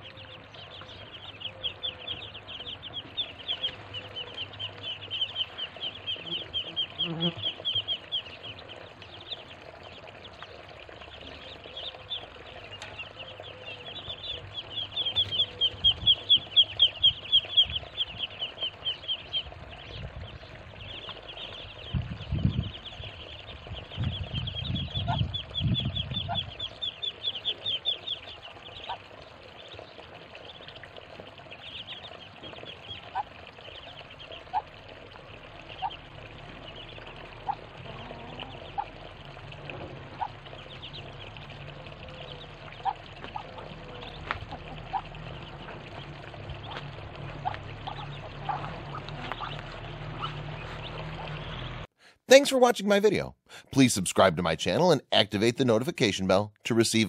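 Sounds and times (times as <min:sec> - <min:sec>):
ducklings peeping: 0:00.0 - 0:51.9.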